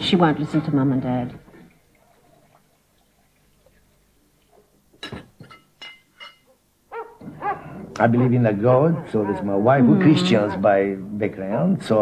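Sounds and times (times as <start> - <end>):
animal yelping: 6.9 - 10.8.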